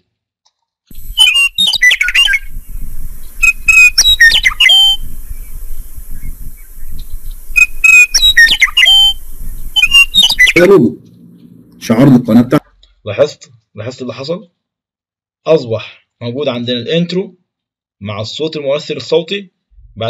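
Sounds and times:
meadowlark song: 0.9 - 11.7.

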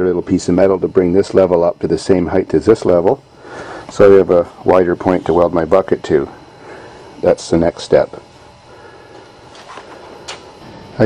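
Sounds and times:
person speaking: 3.8 - 6.4.

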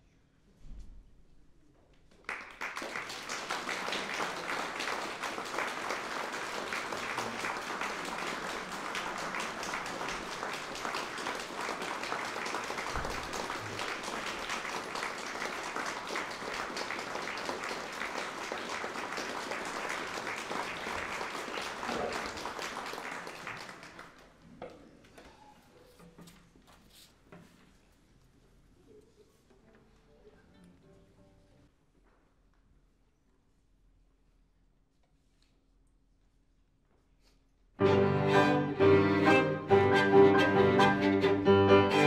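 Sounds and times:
audience applauding: 2.1 - 24.4.

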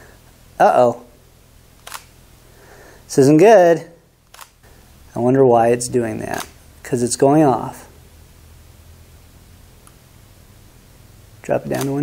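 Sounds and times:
camera shutter clicking: 1.8 - 2.2, 4.3 - 4.6, 6.3 - 6.6, 11.7 - 12.0.

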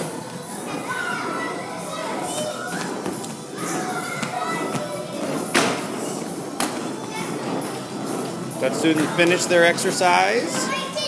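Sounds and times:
children's voices: 0.0 - 11.0.

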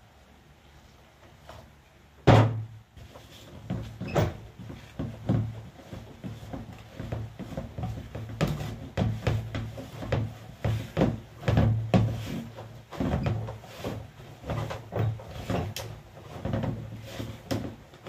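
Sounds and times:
dough being kneaded by hand: 1.0 - 18.0.

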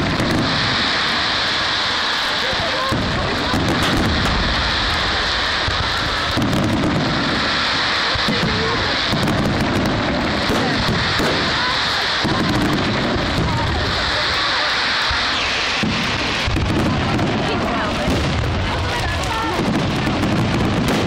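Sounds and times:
fireworks booming: 0.0 - 21.0
steady hiss: 0.0 - 21.0.

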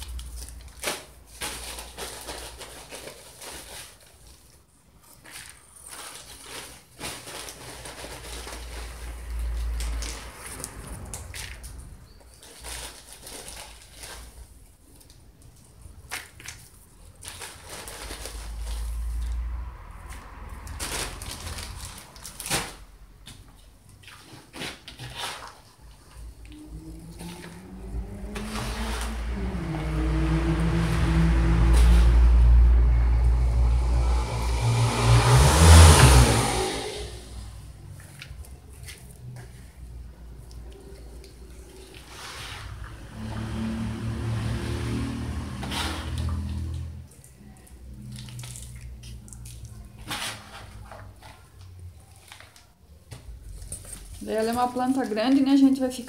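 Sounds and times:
plastic plant pots rustling: 0.0 - 32.5, 37.7 - 56.0
engine hum: 7.8 - 12.6, 17.8 - 23.8, 26.1 - 52.2.

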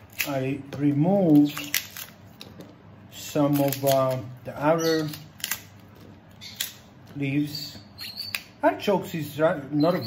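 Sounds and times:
artichoke leaves snapping: 0.0 - 2.5, 3.4 - 7.3.

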